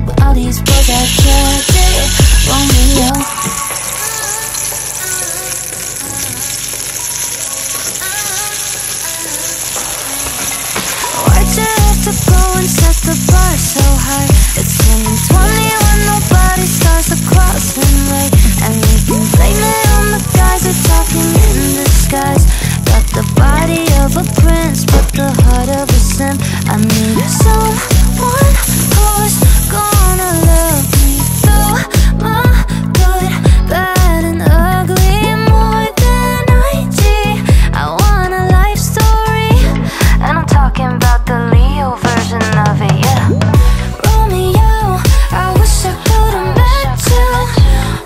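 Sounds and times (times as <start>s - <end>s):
song with a steady beat: 0.0s - 6.0s, 10.1s - 48.0s
asparagus sizzling in a pan: 0.7s - 31.4s.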